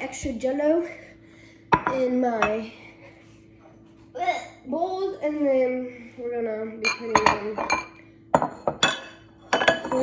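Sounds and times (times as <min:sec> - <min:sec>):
ceramic bowls clinking: 0:06.8 - 0:10.0.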